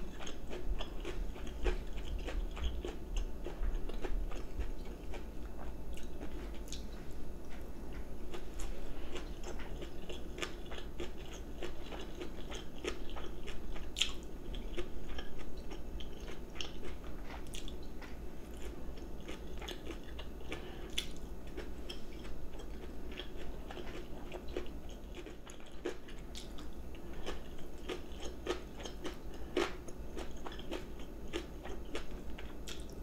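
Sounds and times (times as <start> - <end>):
low steady hum: 0.0 - 33.0
person chewing food: 0.0 - 33.0.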